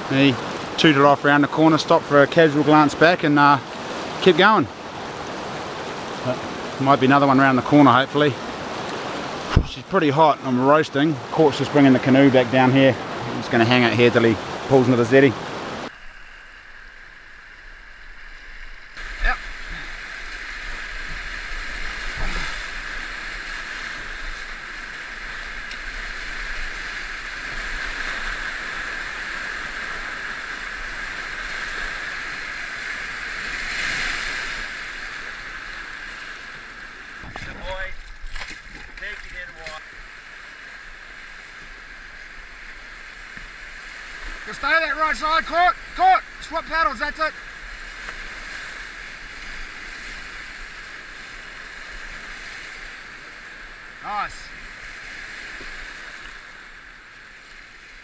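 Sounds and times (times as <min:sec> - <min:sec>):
whitewater rapids rushing: 0:00.0 - 0:16.0, 0:18.4 - 0:38.0, 0:39.0 - 0:54.6.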